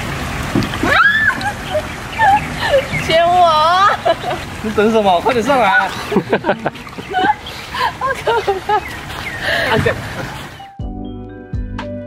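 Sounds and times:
woman squealing and whimpering: 0.8s - 4.0s.

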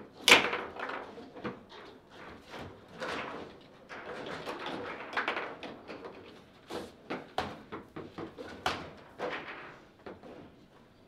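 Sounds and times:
foosball clacks and knocks: 0.2s - 1.9s, 4.0s - 6.4s, 7.1s - 10.2s.

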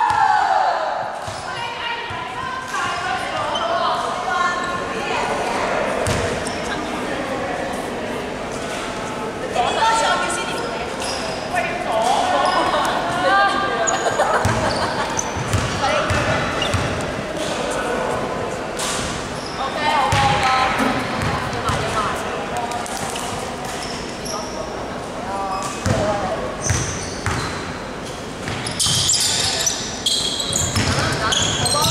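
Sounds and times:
basketball bouncing on wooden court: 6.0s - 6.2s, 14.4s - 14.8s, 15.4s - 17.0s, 20.1s - 20.5s, 25.8s - 27.5s, 30.6s - 31.9s
players calling out: 9.6s - 18.4s.

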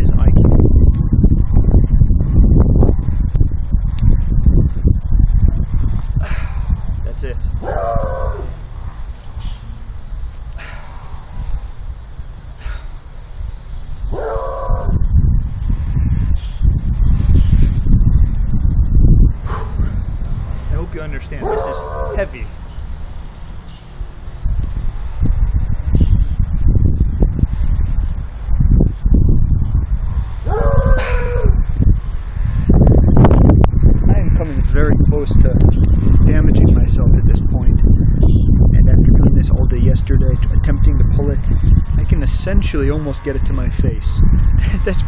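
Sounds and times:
wind rumble on microphone: 0.0s - 45.0s.

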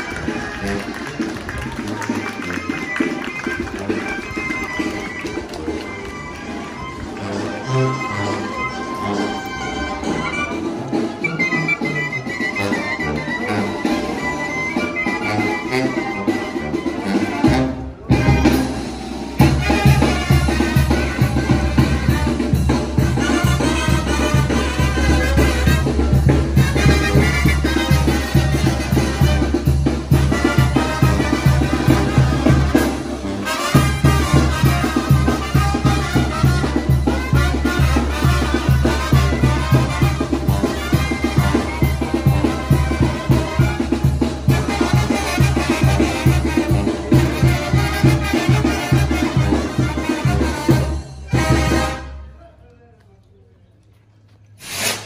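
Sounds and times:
latin brass band music: 0.0s - 52.4s, 54.6s - 55.0s.

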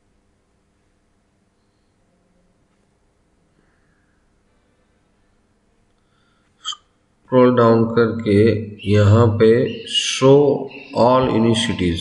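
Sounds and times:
man speaking: 7.3s - 12.0s.

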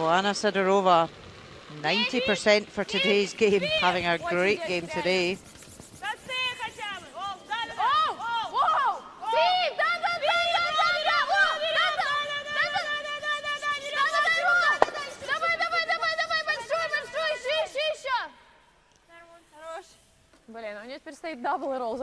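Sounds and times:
brooms scrubbing on ice: 0.0s - 9.0s, 9.8s - 17.9s
women shouting sweeping calls: 1.8s - 22.0s.

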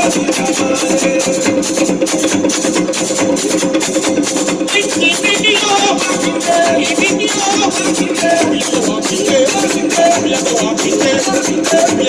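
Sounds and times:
fast hand drum rhythm: 0.0s - 12.0s
steady held tones: 0.0s - 12.0s.

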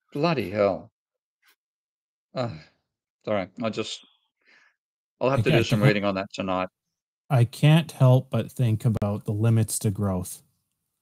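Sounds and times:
man sighing oh: 2.4s - 2.8s.

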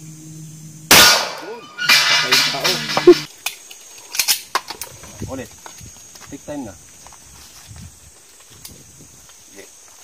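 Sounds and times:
handgun shot: 0.9s - 3.2s.

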